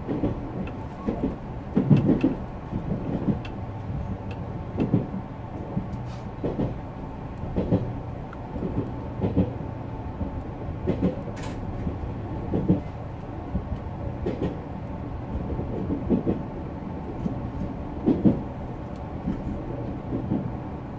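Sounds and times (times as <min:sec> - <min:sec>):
electric train running rumble: 0:00.0 - 0:20.9.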